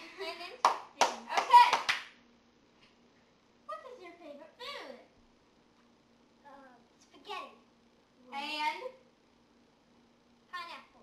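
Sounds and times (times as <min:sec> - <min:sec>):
sharp hand claps: 0:00.6 - 0:02.2.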